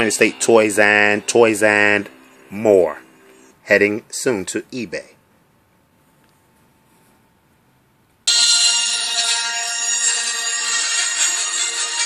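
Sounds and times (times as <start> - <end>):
toy speaker playing music: 8.3 - 12.0.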